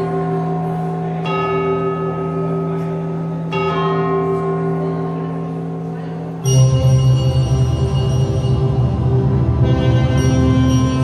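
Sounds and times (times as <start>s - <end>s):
keyboard violin and saxophone music: 6.5s - 11.0s.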